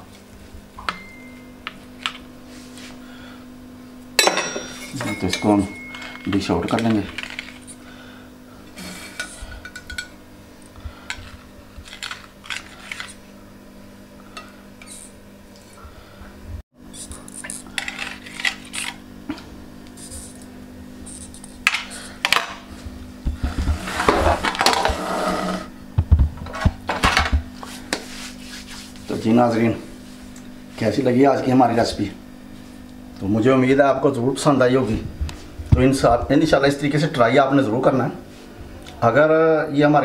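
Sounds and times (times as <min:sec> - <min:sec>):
plate sliding on cloth: 0:23.6 - 0:25.7.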